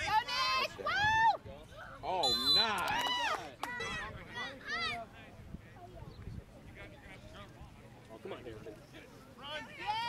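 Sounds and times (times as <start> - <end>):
people shouting and cheering: 9.4 - 10.0.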